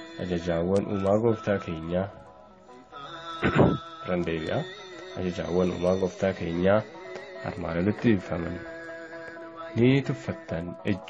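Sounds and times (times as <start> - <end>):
background music with held tone: 0.0 - 11.0.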